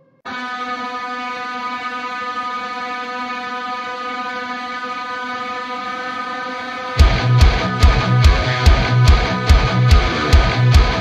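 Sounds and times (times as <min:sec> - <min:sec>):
synthesizer drone chord: 0:00.3 - 0:11.0.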